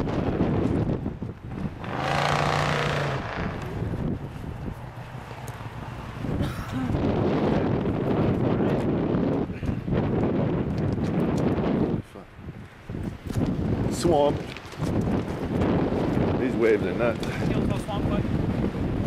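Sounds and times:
wind buffeting microphone: 0.0s - 19.0s.

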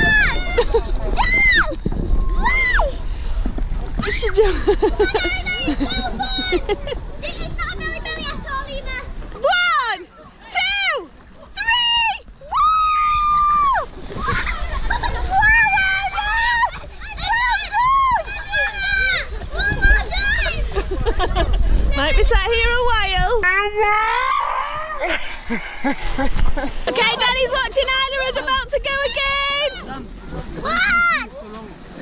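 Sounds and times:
children's voices and calls: 0.0s - 3.1s, 3.9s - 25.2s, 26.9s - 31.9s.

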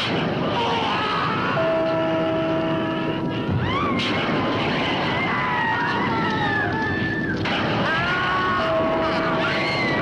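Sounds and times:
loud steady roar: 0.0s - 10.0s
wailing screams: 3.6s - 4.1s, 4.8s - 10.0s.

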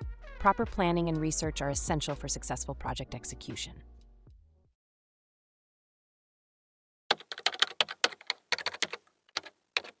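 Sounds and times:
computer keyboard typing: 7.1s - 10.0s.

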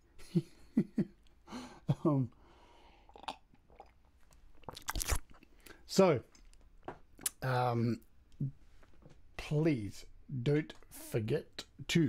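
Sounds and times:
lip and mouth clicks: 3.1s - 5.5s, 7.2s - 7.4s.

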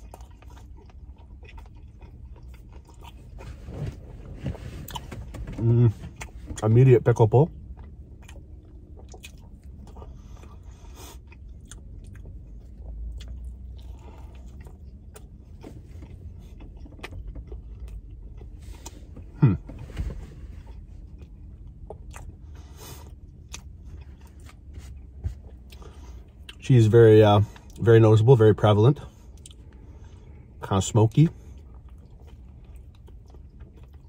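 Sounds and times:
close-up chewing with mouth clicks: 0.0s - 4.0s, 7.5s - 19.8s, 20.6s - 26.6s, 29.2s - 30.4s, 31.5s - 34.0s
low rumble inside a car: 0.0s - 34.0s.

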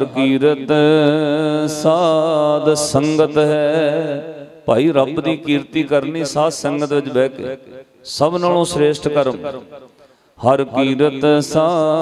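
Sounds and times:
man chanting into microphone: 0.0s - 12.0s.

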